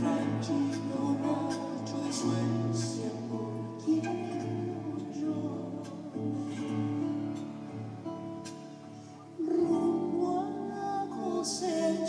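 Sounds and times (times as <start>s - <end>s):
woman singing folk song: 0.0s - 7.0s, 9.4s - 12.0s
classical guitar strumming: 0.0s - 12.0s.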